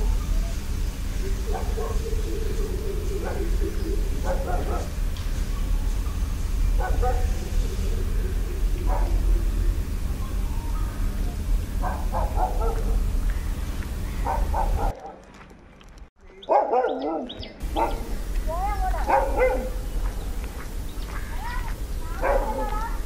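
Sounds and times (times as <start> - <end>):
dog barking and yipping: 1.4 - 5.0, 6.8 - 7.5, 8.8 - 9.3, 11.8 - 13.0, 14.2 - 15.2, 16.5 - 18.1, 19.0 - 19.8, 22.1 - 22.9.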